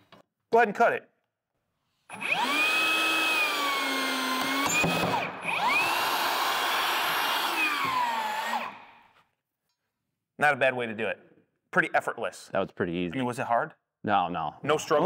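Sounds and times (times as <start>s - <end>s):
electric motor whining: 2.1s - 8.8s.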